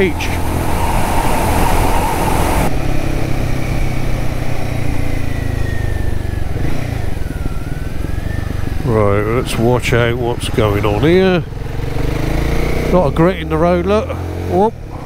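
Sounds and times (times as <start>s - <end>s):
faint falling whine: 0.0s - 2.7s
wind and road noise: 0.0s - 15.0s.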